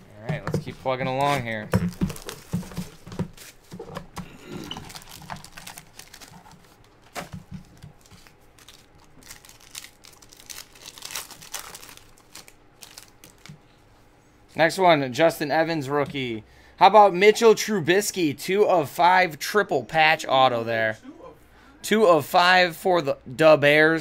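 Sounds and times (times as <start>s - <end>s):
foil wrapper crinkling and tearing: 1.9s - 3.0s, 4.7s - 13.6s.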